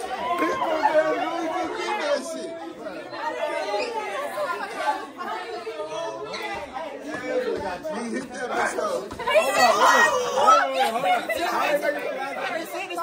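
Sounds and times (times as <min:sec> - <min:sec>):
overlapping indistinct chatter: 0:00.0 - 0:13.0.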